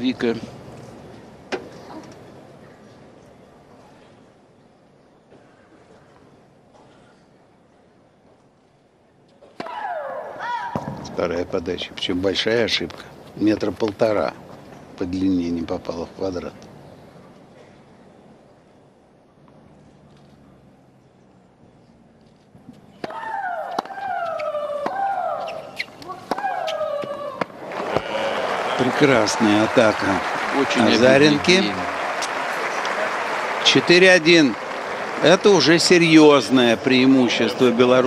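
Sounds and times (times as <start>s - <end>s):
tennis ball struck: 23.0s - 28.1s
hushed stadium crowd: 23.5s - 38.0s.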